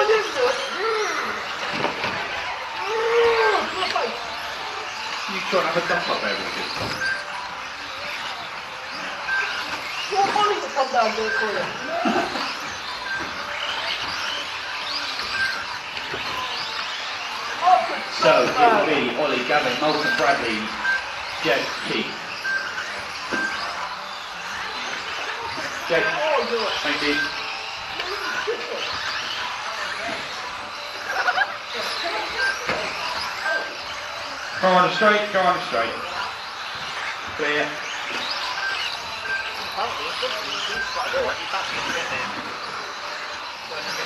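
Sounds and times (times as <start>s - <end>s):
background chatter: 0.0s - 44.0s
small electric motors whining: 0.0s - 44.0s.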